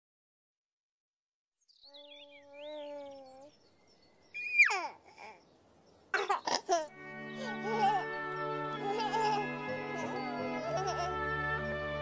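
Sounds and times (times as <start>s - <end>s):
baby cooing: 1.9s - 3.5s, 4.4s - 5.4s, 6.2s - 6.9s, 7.5s - 8.1s, 8.8s - 11.1s
baby giggling: 2.0s - 3.5s, 4.4s - 5.4s, 6.2s - 8.2s, 8.8s - 11.2s
baby squealing: 4.4s - 5.4s, 6.2s - 6.9s, 7.6s - 8.1s.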